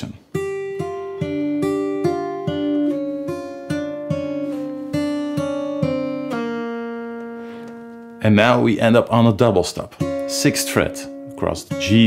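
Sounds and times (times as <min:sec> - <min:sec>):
fingerpicked acoustic guitar: 0:00.0 - 0:12.0.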